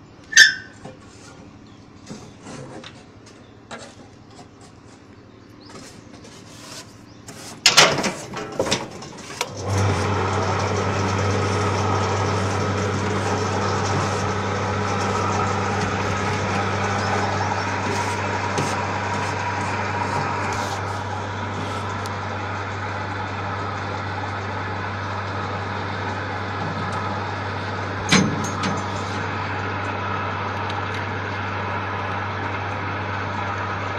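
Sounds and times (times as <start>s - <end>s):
crane motor humming: 4.1s - 33.9s.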